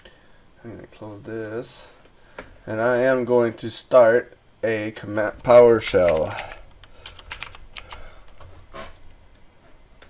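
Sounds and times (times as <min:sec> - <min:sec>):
computer keyboard typing: 0:05.8 - 0:08.4.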